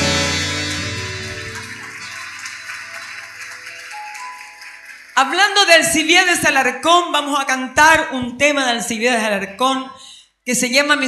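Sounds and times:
accordion and keyboard chord: 0.0s - 1.7s.

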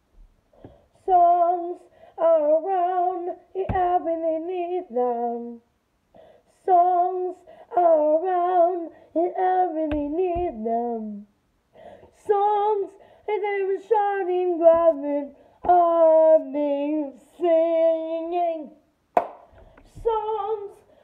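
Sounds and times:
child singing unaccompanied: 1.0s - 5.7s, 6.6s - 11.3s, 12.1s - 18.8s, 19.9s - 20.9s.

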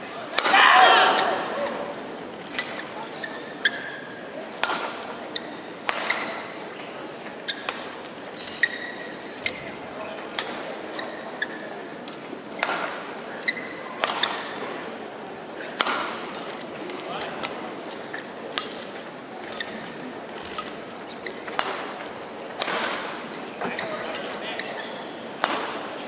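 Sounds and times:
crowd murmur in large hall: 0.0s - 26.0s
shoes squeaking on court floor: 0.5s - 12.7s, 13.3s - 14.6s, 16.4s - 22.2s, 22.8s - 26.0s
rackets striking shuttlecock: 25.4s - 25.9s.

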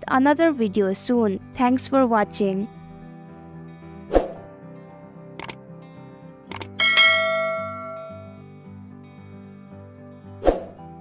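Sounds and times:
soft background music: 0.0s - 11.0s
mouse clicks: 6.5s - 6.7s
notification bell ding: 6.8s - 8.4s.

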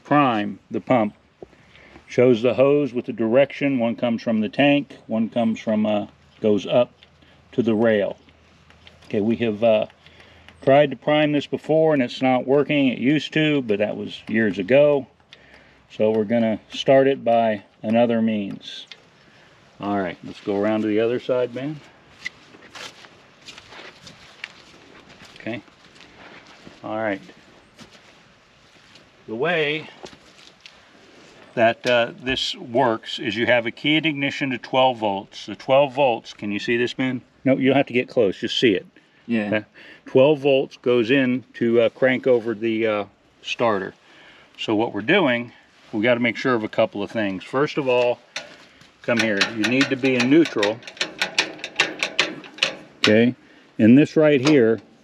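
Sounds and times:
footsteps on grass and dirt: 20.0s - 31.6s
tractor gear lever clicking: 48.4s - 53.2s.

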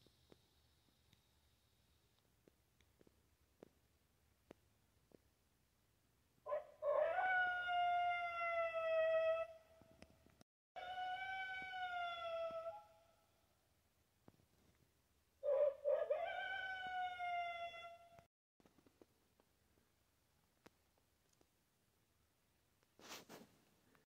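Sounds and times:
long howls: 6.5s - 9.6s, 10.8s - 13.0s, 15.4s - 18.2s.

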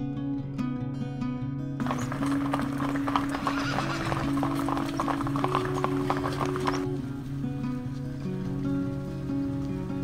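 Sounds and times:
background music: 0.0s - 10.0s
hoofbeats on tarmac: 1.8s - 7.0s.

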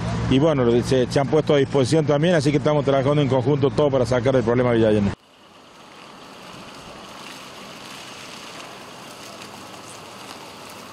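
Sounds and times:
wet street hiss: 5.2s - 10.9s.

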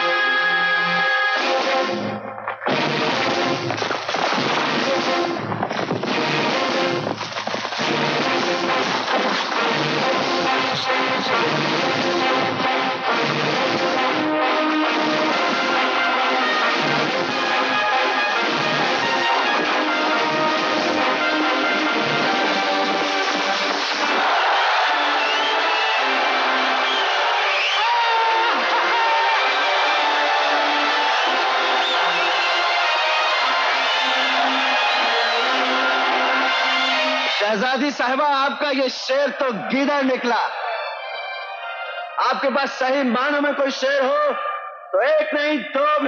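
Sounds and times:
crowd cheering and shouting: 13.6s - 46.0s.

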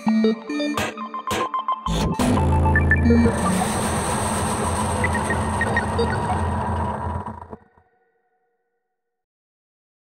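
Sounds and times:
dense wash of noise: 3.2s - 7.6s.

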